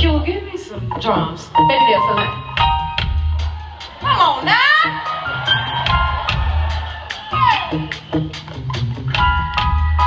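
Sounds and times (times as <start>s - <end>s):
held keyboard chords: 0.0s - 3.8s
live band playing: 0.0s - 10.0s
singer shouting: 4.0s - 5.2s.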